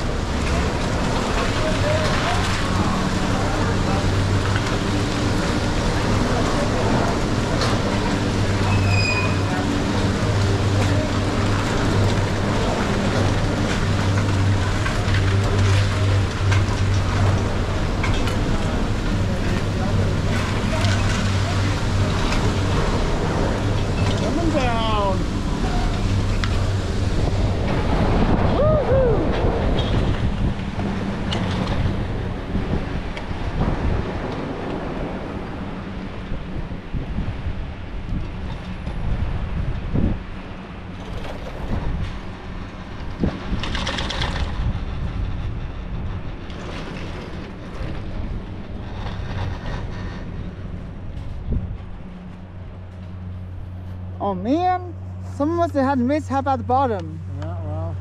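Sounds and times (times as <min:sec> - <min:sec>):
wind noise: 0:00.0 - 0:55.6
chairlift machinery humming: 0:00.0 - 0:58.0
whistling glides: 0:08.6 - 0:09.5.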